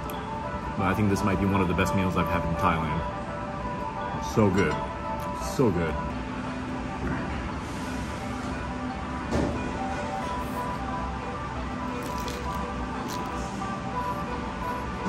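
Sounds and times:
music with low drone: 0.0 - 15.0.

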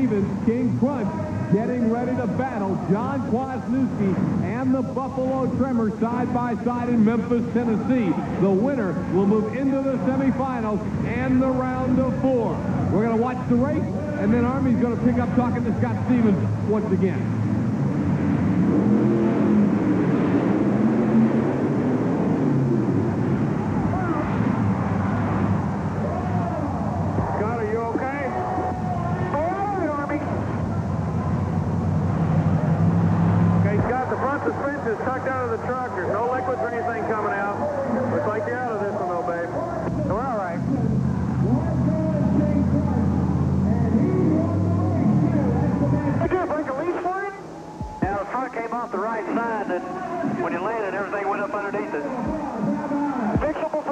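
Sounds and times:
truck engines revving: 0.0 - 53.9.

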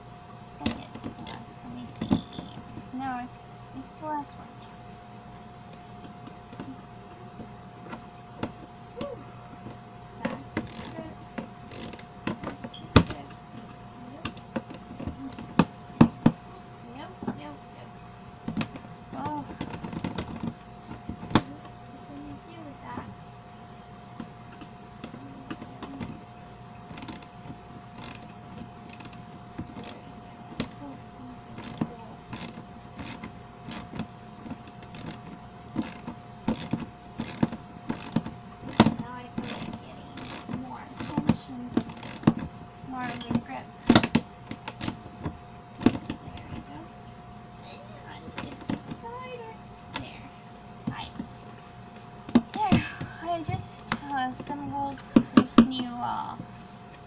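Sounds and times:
faint steady hum: 0.0 - 57.0
ratchet wrench clicking: 10.6 - 11.0, 11.7 - 12.1, 26.9 - 28.3, 28.9 - 29.2, 29.8 - 30.0, 31.6 - 33.9, 34.6 - 42.3, 43.0 - 43.4.

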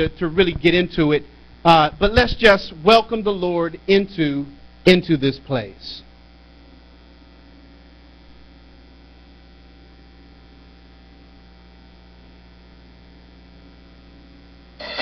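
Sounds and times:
electrical mains hum: 0.0 - 15.0
music: 14.8 - 15.0.

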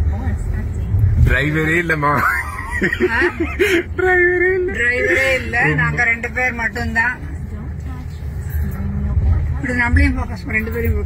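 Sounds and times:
road and tyre rumble in car: 0.0 - 11.0.

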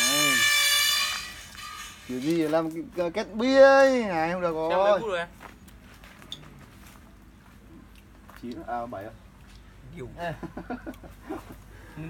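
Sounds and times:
loud buzzing alarm tone: 0.0 - 2.3.

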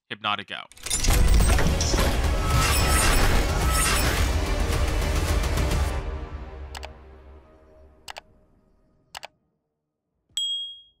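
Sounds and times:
bright high ding: 10.4 - 11.0.

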